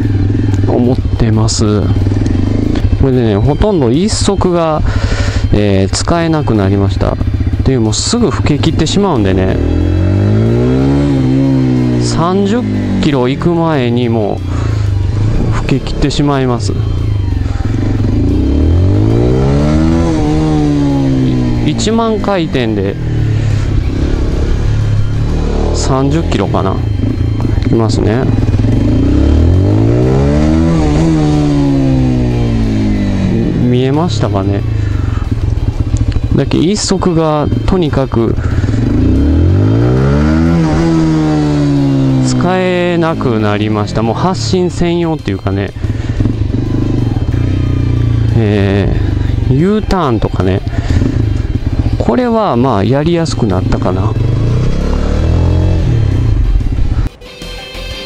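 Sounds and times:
motorcycle engine revving: 0:00.0 - 0:57.2.

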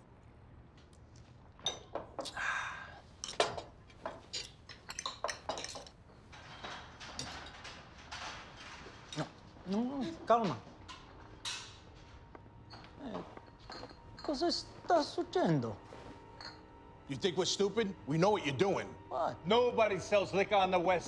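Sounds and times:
cutlery and dishes clinking: 0:01.6 - 0:02.4, 0:03.2 - 0:15.2, 0:16.0 - 0:16.7.

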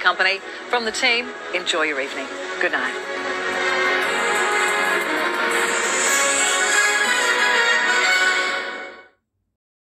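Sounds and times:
tv theme music: 0:00.0 - 0:09.2.

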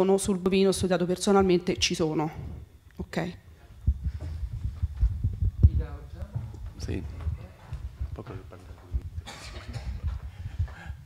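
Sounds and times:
microphone handling thumps: 0:03.7 - 0:11.0.

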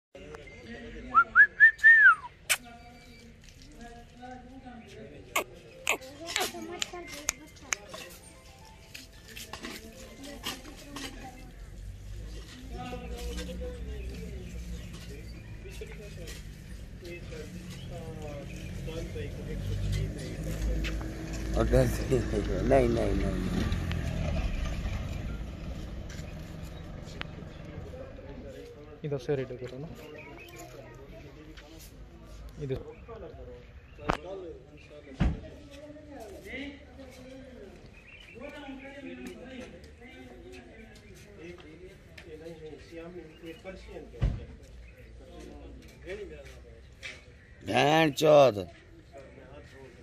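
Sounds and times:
person whistling: 0:01.2 - 0:02.3
vehicle engine idling: 0:11.6 - 0:28.9.

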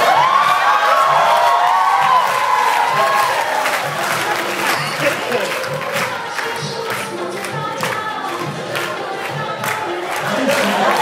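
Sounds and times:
audience applauding: 0:00.0 - 0:11.0
music playing: 0:00.0 - 0:11.0.

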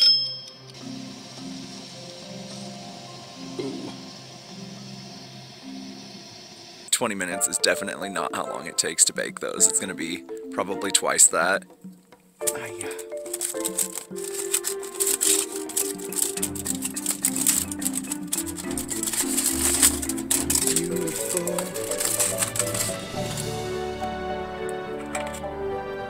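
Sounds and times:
background music: 0:00.1 - 0:06.0, 0:06.9 - 0:26.0
aluminium foil crinkling: 0:12.4 - 0:23.8, 0:24.8 - 0:25.4.

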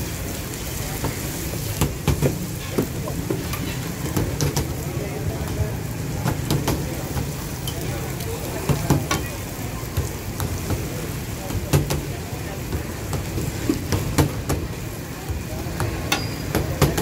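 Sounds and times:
flatbread sizzling on griddle: 0:00.0 - 0:17.0
metal spatula scraping griddle: 0:02.6 - 0:04.2.

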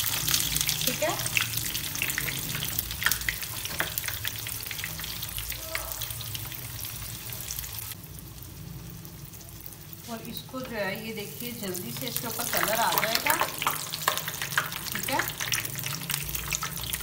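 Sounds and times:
food sizzling in hot oil: 0:00.0 - 0:17.0.

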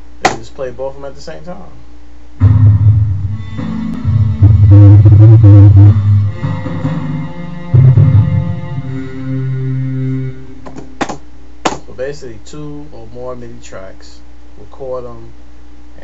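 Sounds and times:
synthesized orchestral instruments: 0:02.4 - 0:10.6.

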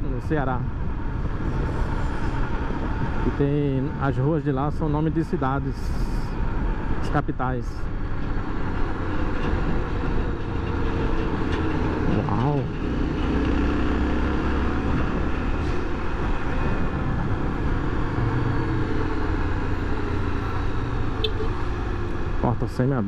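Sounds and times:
wind and road noise: 0:00.0 - 0:23.0.

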